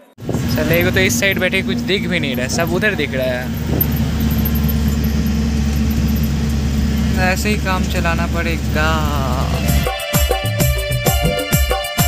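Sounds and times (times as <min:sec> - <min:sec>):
road rumble: 0:00.0 - 0:09.9
bus engine drone: 0:00.0 - 0:11.0.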